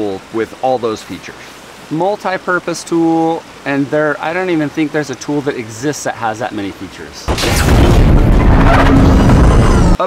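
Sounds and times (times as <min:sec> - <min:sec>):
motorcycle engine and mechanical rush: 0:07.5 - 0:10.0.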